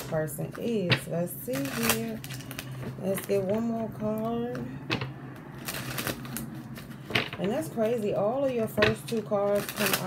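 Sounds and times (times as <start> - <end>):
cards shuffling rustle: 5.6 - 10.0.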